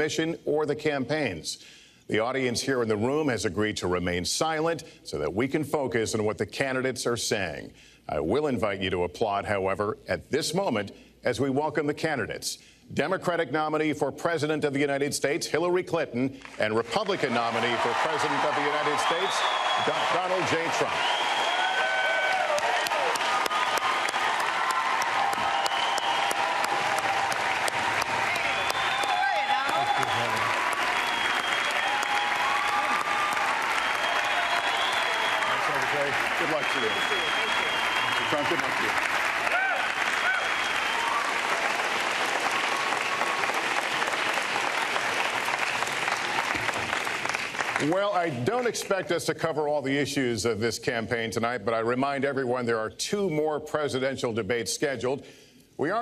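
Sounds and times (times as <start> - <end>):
audience applauding: 16.4 - 49.0
cheering voices: 17.1 - 47.0.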